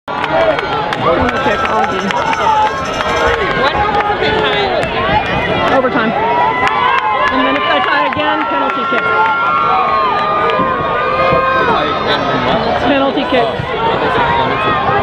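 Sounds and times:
crowd chatter: 0.1 - 15.0
spectators shouting: 0.1 - 15.0.

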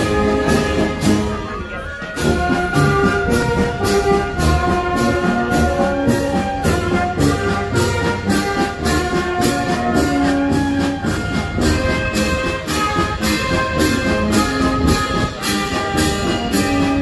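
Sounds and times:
brass band playing: 0.0 - 17.0.

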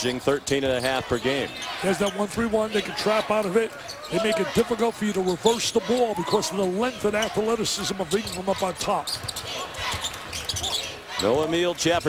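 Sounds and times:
murmur of arena crowd: 0.0 - 12.0.

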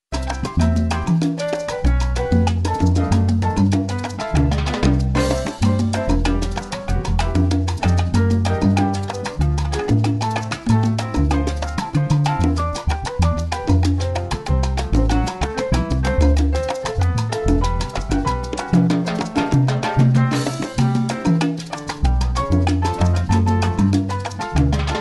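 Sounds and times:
bass line: 0.1 - 25.0
piano figures: 0.1 - 25.0
drum and percussion hits: 4.2 - 8.9, 17.5 - 21.4.

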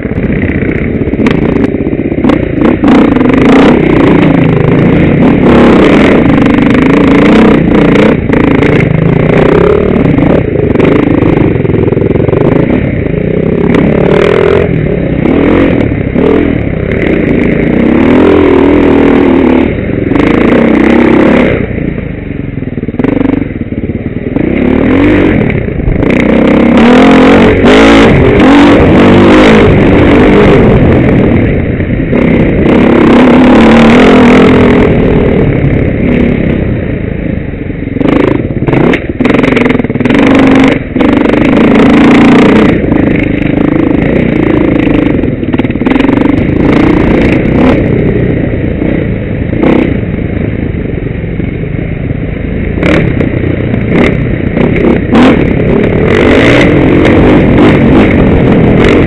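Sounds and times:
dirt bike engine revving: 0.0 - 50.4, 52.7 - 59.0.

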